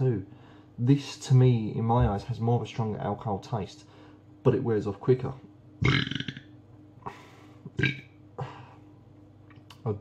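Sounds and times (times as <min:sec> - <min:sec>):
man burping: 0:05.8 - 0:06.5, 0:07.7 - 0:08.1.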